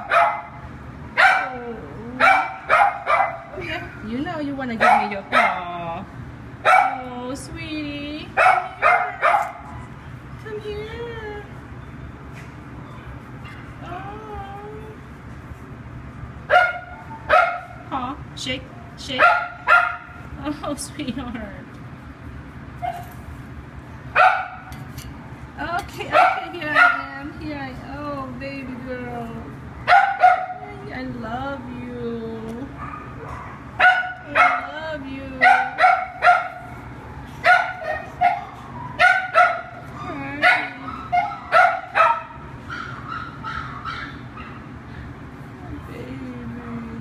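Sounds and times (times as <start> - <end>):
dog barking: 0.0 - 0.6, 1.2 - 1.5, 2.2 - 3.5, 4.8 - 5.6, 6.6 - 7.0, 8.4 - 9.7, 16.5 - 17.8, 19.2 - 20.2, 24.2 - 24.7, 26.1 - 27.0, 29.8 - 30.6, 32.8 - 34.7, 35.4 - 36.8, 37.4 - 39.8, 40.4 - 44.7.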